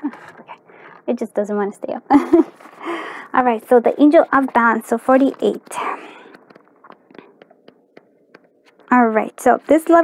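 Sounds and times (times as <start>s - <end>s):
person speaking: 0.0s - 10.0s
paper rustling: 2.2s - 10.0s.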